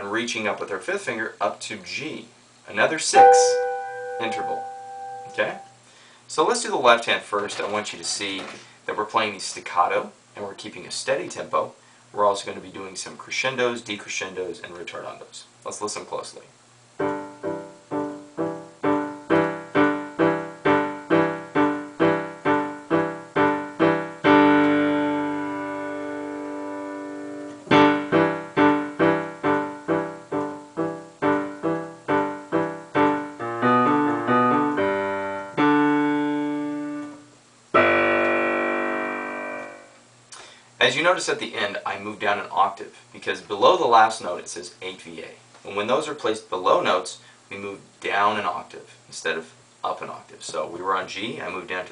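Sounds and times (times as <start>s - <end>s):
digital piano staccato chords: 3.2s - 5.6s, 17.0s - 37.2s, 37.8s - 40.0s.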